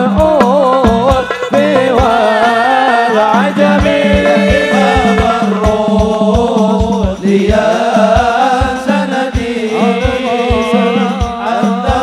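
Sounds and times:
low drum beating steadily: 0:00.0 - 0:12.0
person singing devotional song: 0:00.0 - 0:12.0.

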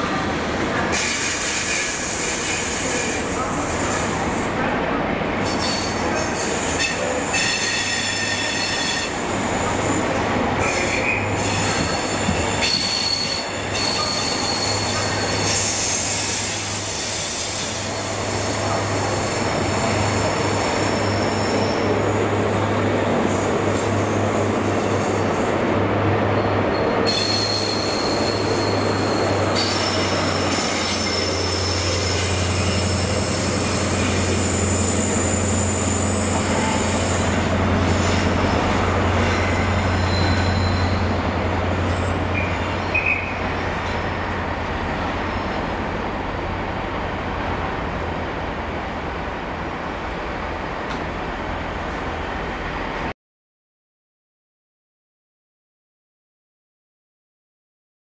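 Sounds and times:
diesel train hum: 0:00.0 - 0:53.1
high-pitched wheel squeal: 0:10.7 - 0:18.2, 0:27.1 - 0:37.4, 0:39.2 - 0:41.2.

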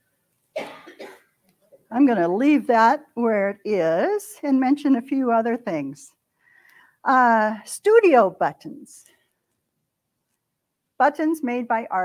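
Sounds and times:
woman coughing: 0:00.6 - 0:01.2
woman speaking: 0:01.9 - 0:06.1, 0:07.0 - 0:09.1, 0:11.0 - 0:12.0.

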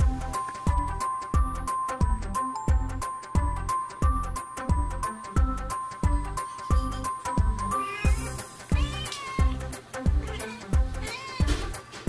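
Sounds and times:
music with steady beat: 0:00.0 - 0:12.0
kitten meowing: 0:07.7 - 0:11.7.

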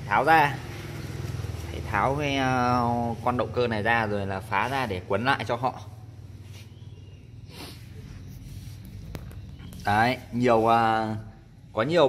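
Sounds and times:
faint workshop noise: 0:00.0 - 0:12.0
short breathy rustle: 0:07.5 - 0:09.2.

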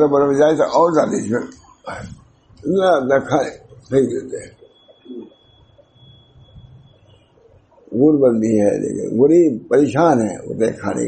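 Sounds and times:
man speaking: 0:00.0 - 0:05.3, 0:07.9 - 0:11.0
faint high-pitched whine: 0:00.0 - 0:11.0.

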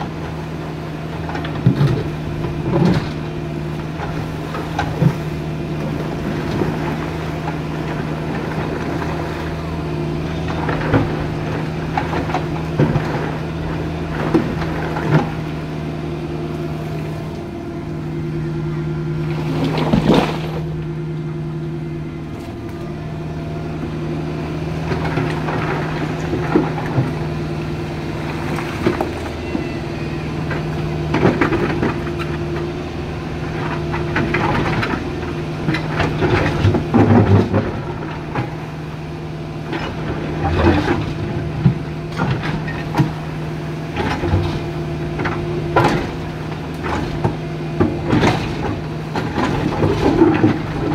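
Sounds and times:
excavator diesel engine running: 0:00.0 - 0:50.9.

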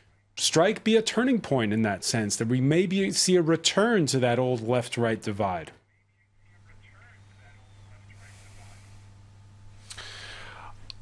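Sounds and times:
faint electrical hum: 0:00.0 - 0:11.0
low background hiss: 0:00.0 - 0:11.0
person speaking: 0:00.4 - 0:09.1
breath intake: 0:09.8 - 0:10.8.

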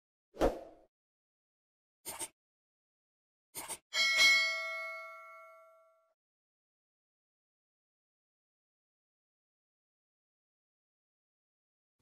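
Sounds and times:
bell chime ding: 0:04.0 - 0:06.2.

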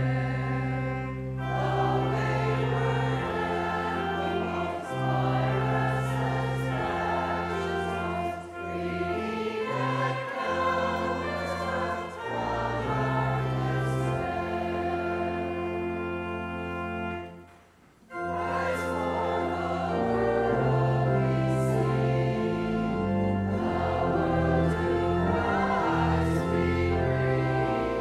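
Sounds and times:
organ bass notes: 0:00.0 - 0:17.4, 0:18.1 - 0:28.0
choir and congregation singing hymn: 0:00.0 - 0:17.5, 0:18.1 - 0:28.0.

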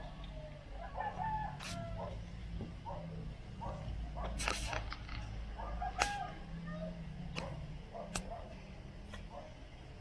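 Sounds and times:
sharp click: 0:08.1 - 0:08.3.

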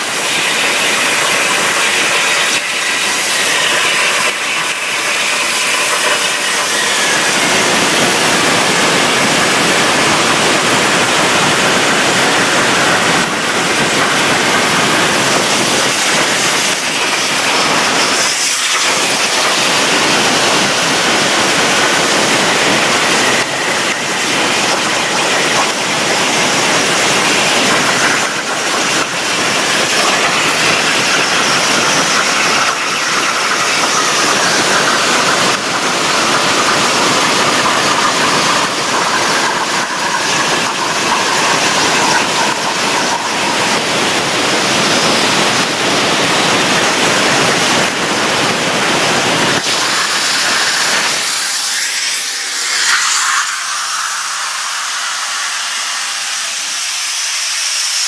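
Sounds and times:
plasma torch hissing: 0:00.0 - 0:43.8, 0:49.3 - 0:58.0.

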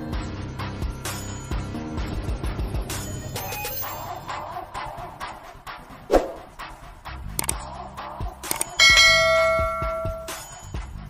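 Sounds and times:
faint background music beat: 0:00.0 - 0:11.0
click: 0:07.4 - 0:07.6
notification bell ding: 0:08.8 - 0:10.4.

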